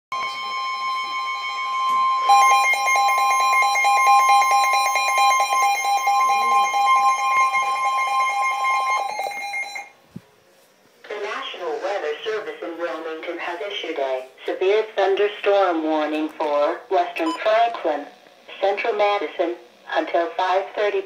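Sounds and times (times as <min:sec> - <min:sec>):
steady warning alarm tone: 0:00.1 - 0:10.0.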